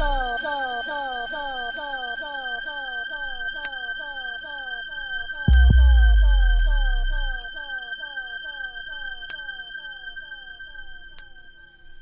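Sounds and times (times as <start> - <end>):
steady high synthesizer tone: 0.0 - 8.6.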